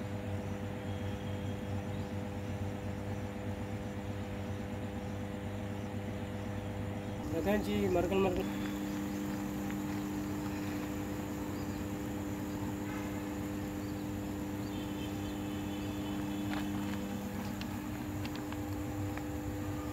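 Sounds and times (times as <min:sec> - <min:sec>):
electrical substation hum: 0:00.0 - 0:19.9.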